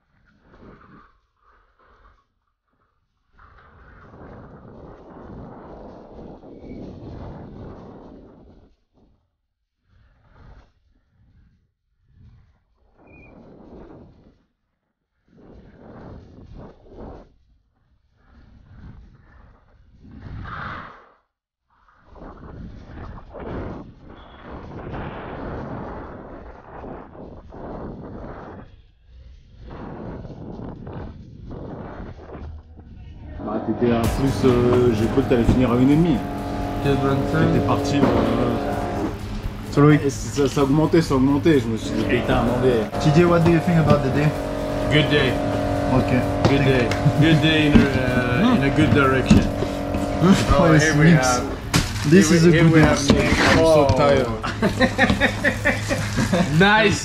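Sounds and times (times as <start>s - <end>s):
mountain bike trail noise: 33.4s - 57.0s.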